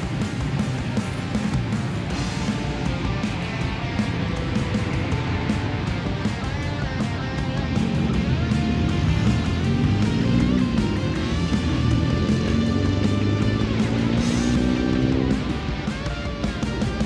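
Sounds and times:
guitar background music: 0.0s - 17.0s.

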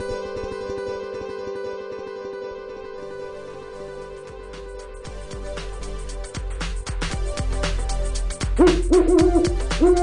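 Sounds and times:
music with drum beat: 5.3s - 10.0s
owl hooting: 8.5s - 10.0s.

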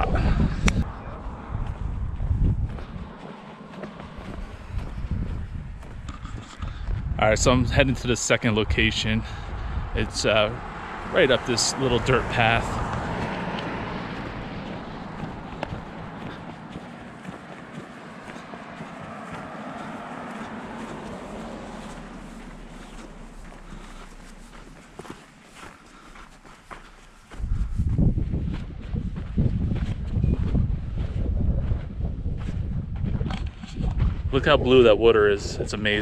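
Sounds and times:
wind buffeting microphone: 0.0s - 25.7s, 26.3s - 36.0s
footsteps on sandy dirt: 0.0s - 34.9s.

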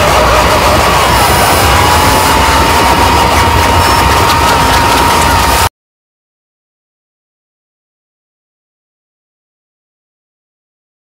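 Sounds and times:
distorted noise music: 0.0s - 5.7s
low rumble: 0.0s - 5.7s
steady mid-pitched tone: 0.0s - 5.7s.

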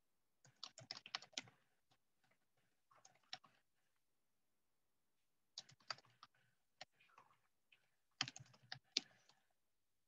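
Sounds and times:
faint typing on keyboard: 0.4s - 4.0s, 5.5s - 9.6s.

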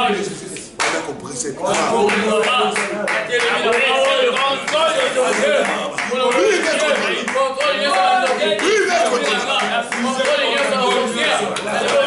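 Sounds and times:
man praying aloud: 0.0s - 12.0s
hand claps: 0.6s - 1.1s, 1.7s - 12.0s.

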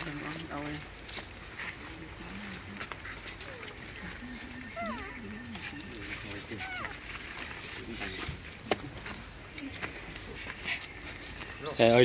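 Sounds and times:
faint voices talking: 0.0s - 12.0s
high squeaky sliding calls: 4.4s - 5.8s, 6.4s - 7.1s.

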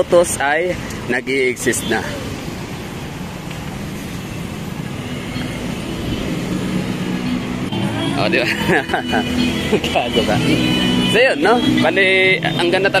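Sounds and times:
road traffic: 0.0s - 13.0s.

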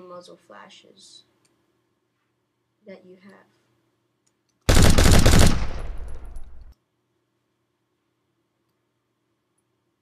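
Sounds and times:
machine gun burst: 4.7s - 6.7s.

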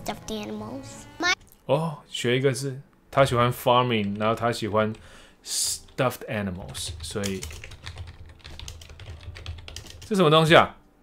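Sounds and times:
typing on a computer keyboard: 6.6s - 10.2s.

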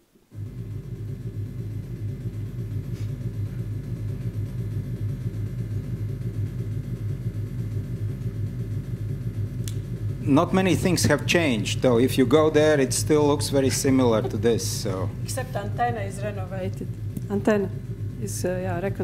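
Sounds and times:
low rumble through speakers: 0.3s - 19.0s.

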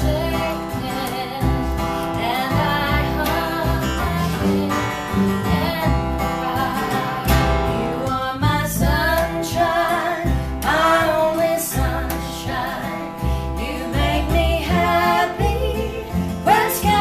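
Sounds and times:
acoustic guitar: 0.0s - 17.0s
plucked double bass: 0.0s - 17.0s
woman singing: 0.0s - 17.0s.

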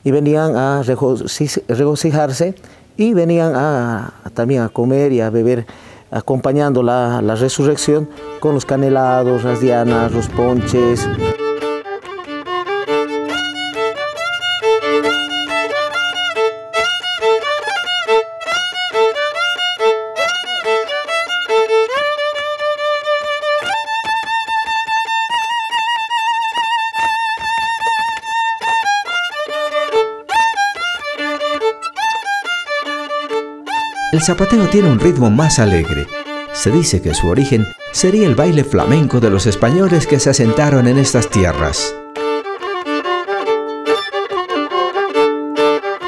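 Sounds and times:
lively violin folk tune: 4.5s - 46.0s.

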